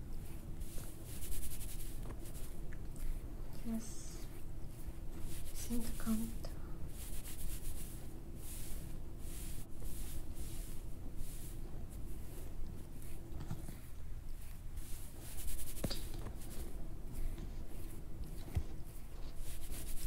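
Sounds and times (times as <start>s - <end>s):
brushing and rubbing hair: 0.0s - 20.0s
faint low hum: 0.0s - 20.0s.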